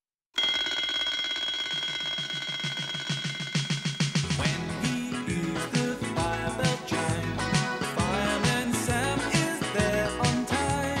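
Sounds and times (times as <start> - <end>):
alarm clock bells ringing: 0.4 - 4.4.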